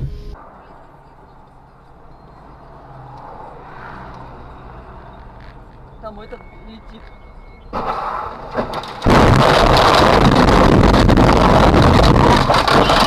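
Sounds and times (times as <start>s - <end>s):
vehicle driving: 0.0s - 13.0s.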